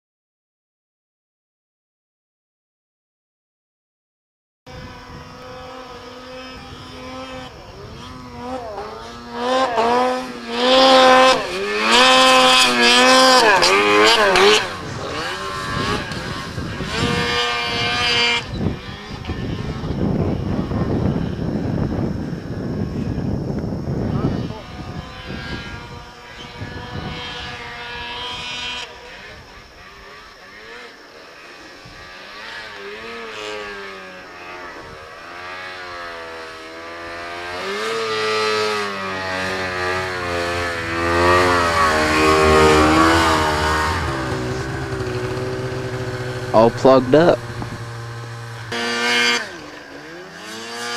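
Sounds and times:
snowmobile engines revving: 4.8 - 50.9.

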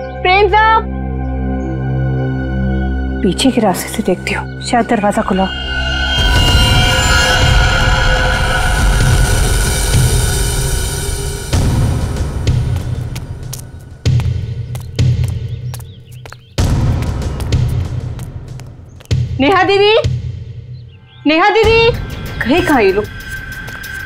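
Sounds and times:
suspenseful music chord: 0.0 - 14.1
low hits: 4.5 - 21.0.

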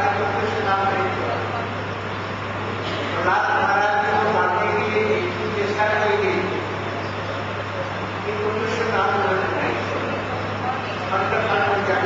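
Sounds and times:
low electrical hum: 0.0 - 12.0
person speaking: 2.8 - 12.0.

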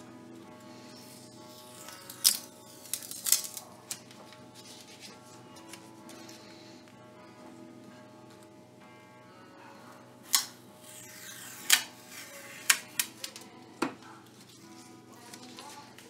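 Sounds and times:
masking tape crackling: 0.0 - 6.4, 10.2 - 16.0
faint background music: 0.0 - 16.0.

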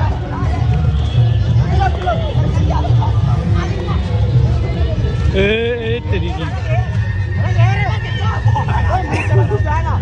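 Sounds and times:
young men shouting and talking: 0.0 - 10.0.

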